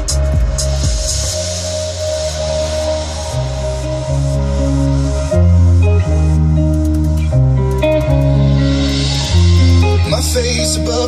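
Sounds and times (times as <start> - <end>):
electronic dance music with heavy bass: 0.0 - 11.0.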